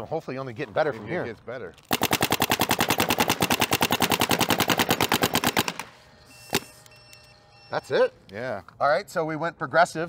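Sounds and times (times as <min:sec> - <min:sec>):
paintball marker firing rapidly: 0:01.9 - 0:06.0.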